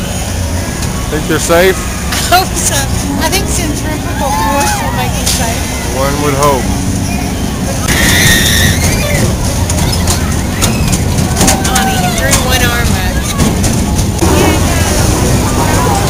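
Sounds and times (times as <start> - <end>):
people's voices: 0.0 - 16.0
ride machinery rumbling: 0.0 - 16.0.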